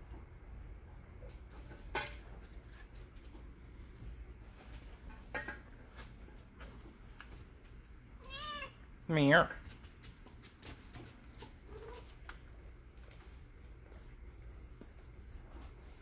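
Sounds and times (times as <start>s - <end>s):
cat meowing: 8.2s - 8.8s.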